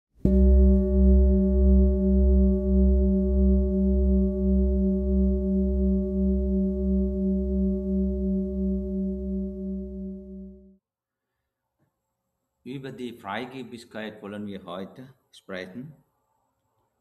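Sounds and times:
struck metal bowl ringing: 0.3s - 10.1s.

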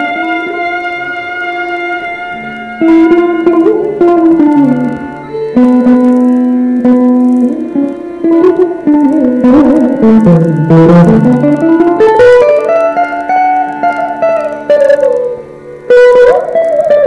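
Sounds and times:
mandolin melody: 0.0s - 17.0s
violin melody: 0.0s - 17.0s.

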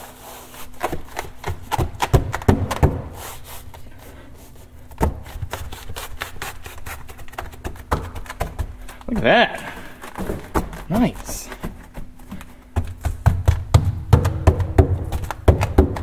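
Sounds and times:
hands pressing mat onto hook-and-loop: 0.5s - 3.8s, 4.9s - 16.0s
dull knocks and rubbing: 11.5s - 16.0s.

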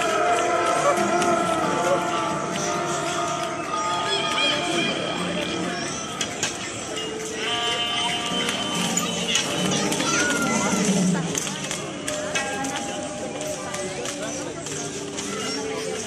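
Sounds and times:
music playing: 0.0s - 14.7s
crowd chatter: 0.0s - 16.0s.

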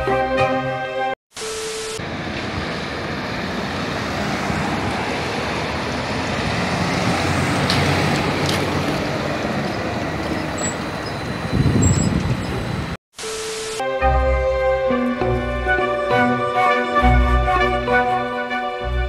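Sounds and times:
street traffic: 1.3s - 19.0s
trolleybus passing: 2.0s - 13.0s.

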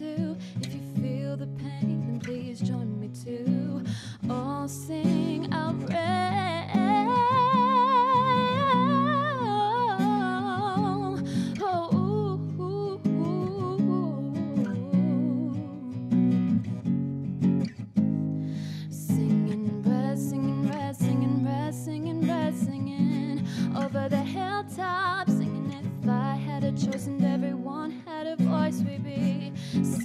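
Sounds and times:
woman singing: 0.0s - 16.5s, 18.7s - 30.0s
acoustic guitar strumming: 0.6s - 30.0s.

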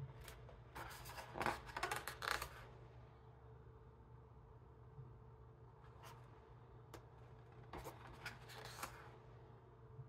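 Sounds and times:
book page turning: 7.4s - 9.1s.

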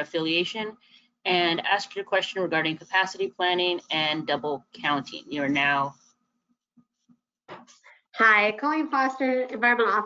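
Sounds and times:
woman speaking over microphone: 0.0s - 0.7s, 1.3s - 5.9s.

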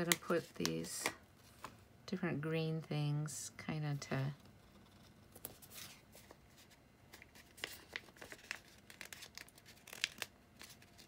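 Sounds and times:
paper sticker sheet crinkling: 5.3s - 11.0s.

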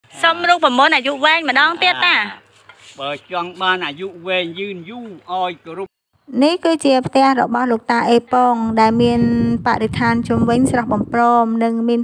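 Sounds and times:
elderly man speaking: 1.8s - 5.9s.

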